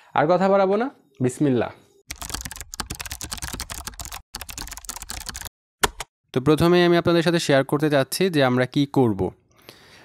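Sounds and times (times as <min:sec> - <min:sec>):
fast keyboard typing: 0:02.1 - 0:06.1.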